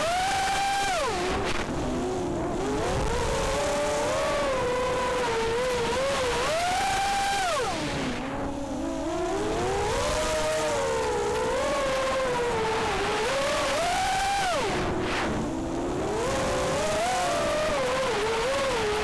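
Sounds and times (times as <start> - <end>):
quadcopter motors whining: 0.0 - 19.0.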